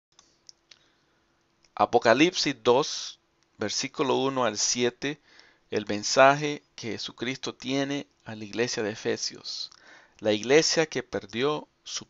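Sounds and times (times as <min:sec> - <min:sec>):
faint steady hum: 0:00.2 - 0:12.0
person speaking: 0:01.7 - 0:12.0.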